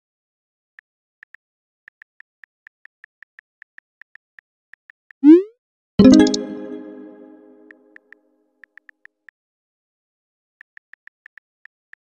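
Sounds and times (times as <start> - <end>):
short rising bloop: 5.2 - 7.5
bright multi-tone chime: 6.0 - 7.6.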